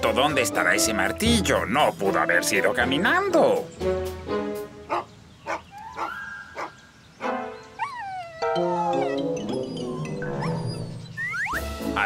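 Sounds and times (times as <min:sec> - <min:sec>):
background music: 0:00.0 - 0:12.0
cartoon dog sounds: 0:07.8 - 0:11.7.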